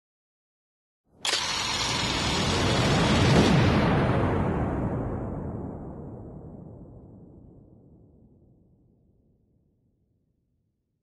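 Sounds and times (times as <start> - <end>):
dense rumbling noise: 1.4 - 8.2.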